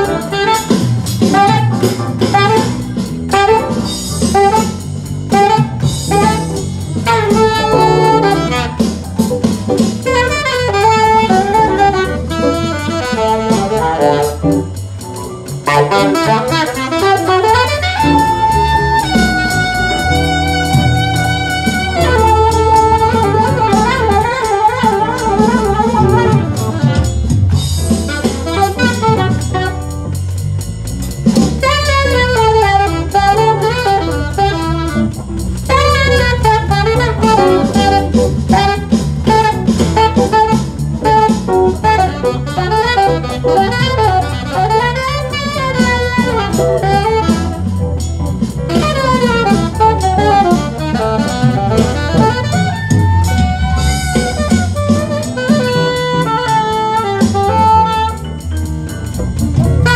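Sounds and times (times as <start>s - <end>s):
alto saxophone jazz melody: 0.0s - 59.9s
keyboard accompaniment: 0.0s - 59.9s
steady low beat: 0.0s - 59.9s.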